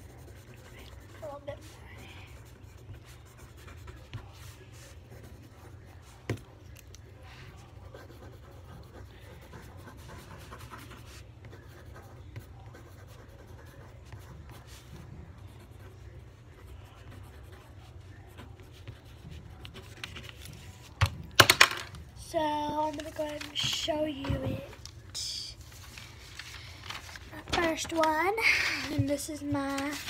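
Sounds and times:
pencil scratching on paper: 0:00.0 - 0:21.0.

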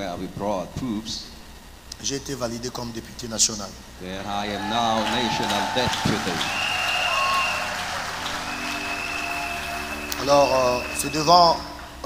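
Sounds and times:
crowd clapping: 0:04.5 - 0:12.0.

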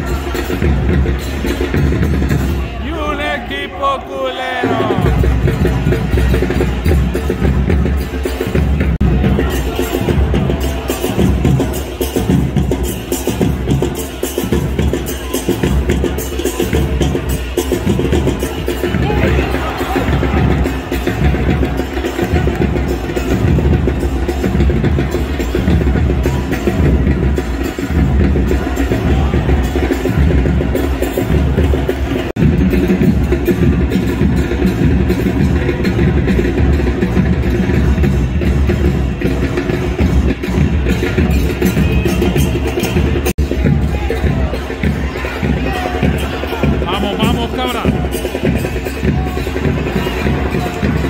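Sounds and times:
drums beating steady rhythm: 0:00.0 - 0:51.0
music: 0:00.0 - 0:51.0.

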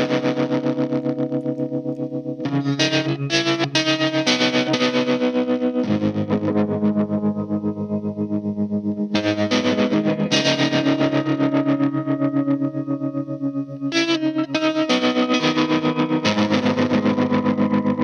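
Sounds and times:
electric guitar strumming chords: 0:00.0 - 0:18.0.

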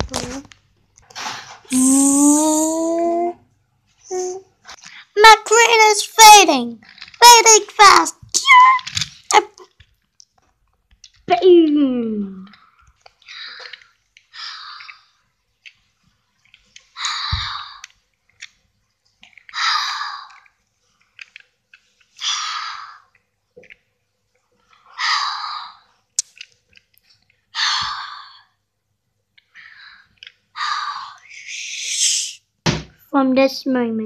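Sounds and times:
child's wordless vocal sounds: 0:01.7 - 0:05.7, 0:17.0 - 0:17.9, 0:30.6 - 0:32.4
breathy hiss: 0:29.6 - 0:32.5.

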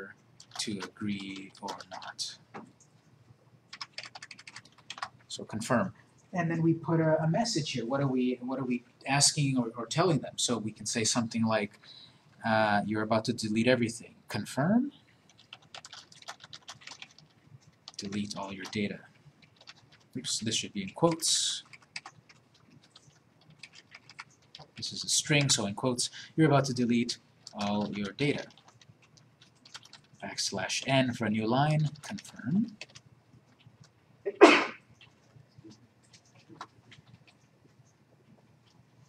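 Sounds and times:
computer keyboard typing: 0:00.4 - 0:02.9, 0:03.7 - 0:05.6, 0:15.3 - 0:34.0, 0:34.9 - 0:38.8
person sneezing: 0:34.3 - 0:34.8.

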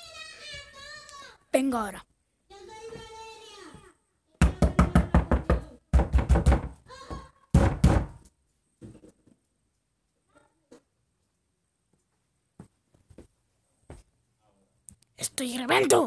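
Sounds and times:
rapid knocking on something hard: 0:04.4 - 0:08.2.

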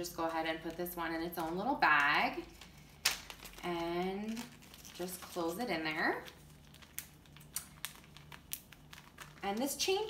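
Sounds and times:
plastic bag crinkling and clicking: 0:00.5 - 0:10.0.

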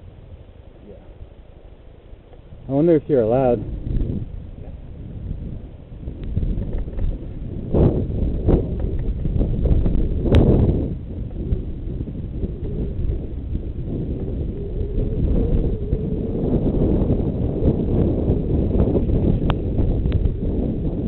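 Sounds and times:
wind buffeting microphone: 0:00.0 - 0:21.0
bike tyres rumbling on dirt: 0:02.4 - 0:21.0.

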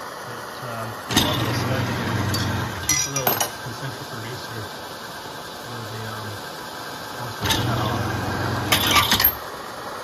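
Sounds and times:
motor humming: 0:00.9 - 0:02.9, 0:07.2 - 0:09.2.

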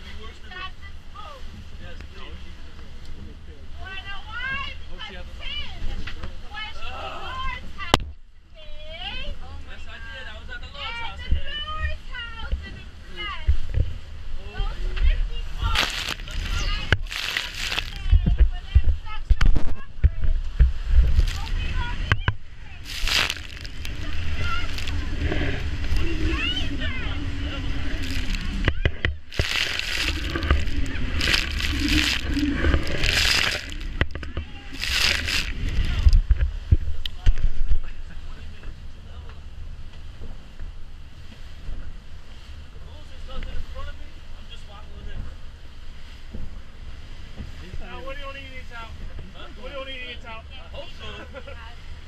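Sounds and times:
boat engine low rumble: 0:00.0 - 0:52.0
wind: 0:00.0 - 0:52.0
water splashing: 0:14.8 - 0:37.0.

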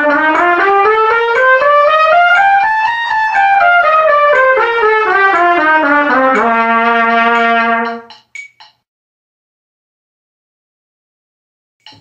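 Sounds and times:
trumpet playing a scale: 0:00.0 - 0:08.1.

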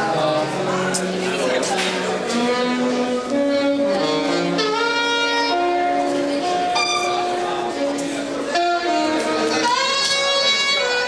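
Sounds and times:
jazz saxophone: 0:00.0 - 0:11.0.

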